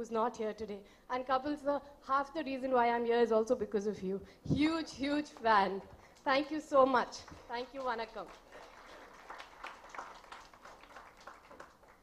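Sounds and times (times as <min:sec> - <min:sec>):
faint audience clapping: 0:05.2 - 0:12.0.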